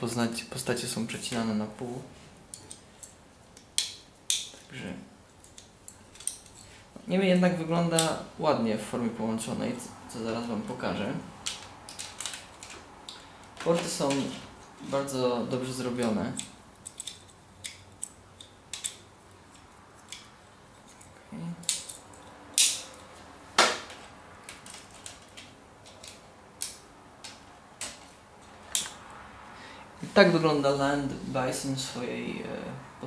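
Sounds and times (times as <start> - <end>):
plastic toy parts clicking: 11.4 - 14.3, 16.3 - 19.0.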